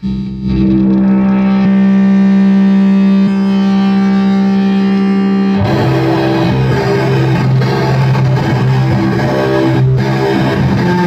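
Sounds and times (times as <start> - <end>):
distorted electric guitar note: 0.0 - 11.0.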